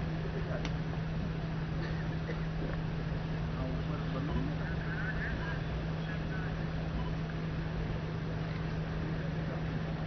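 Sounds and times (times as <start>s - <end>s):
low hum with rumble: 0.0s - 10.0s
faint distant voices: 3.4s - 7.2s.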